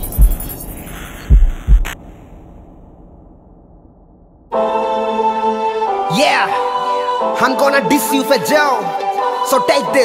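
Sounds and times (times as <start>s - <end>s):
deep heartbeat thumps: 0.0s - 2.3s
low hum: 0.0s - 4.6s.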